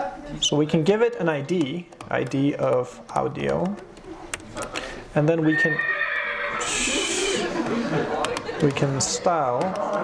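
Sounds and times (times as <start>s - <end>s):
horse whinny: 5.5s - 7.5s.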